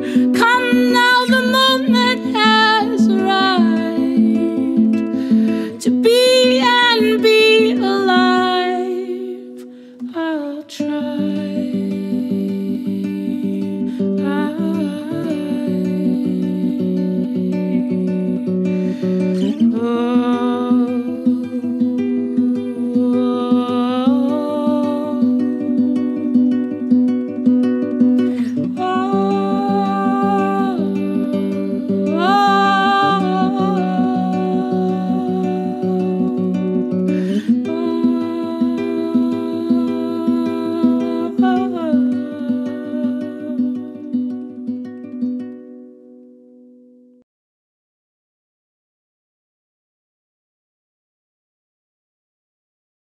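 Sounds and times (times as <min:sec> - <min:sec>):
fingerpicked classical guitar: 0:00.0 - 0:47.2
wordless vocal hum: 0:28.3 - 0:43.5.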